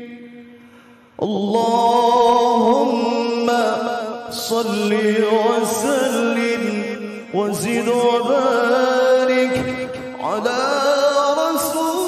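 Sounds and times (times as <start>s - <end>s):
man reciting melodically: 0.0s - 12.0s.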